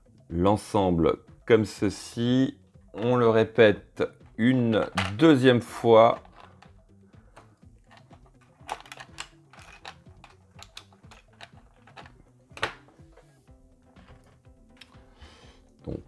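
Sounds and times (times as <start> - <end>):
faint background music: 0.0 - 16.0
small plastic parts clicking: 7.4 - 12.8.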